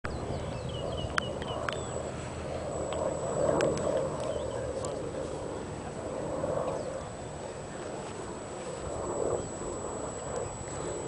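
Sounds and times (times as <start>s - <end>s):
low outdoor background noise: 0.1s - 11.0s.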